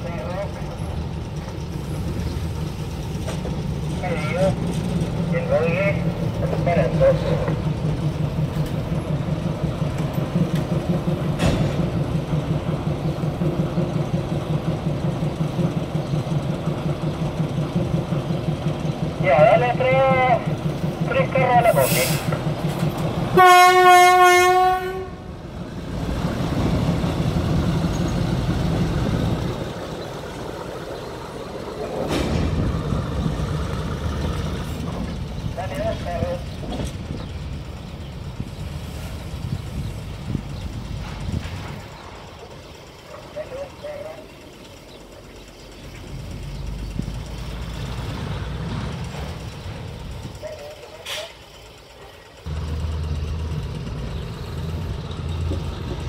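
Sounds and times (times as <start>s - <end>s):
train rumbling over rails: 0.0s - 56.0s
train horn blast: 23.3s - 25.3s.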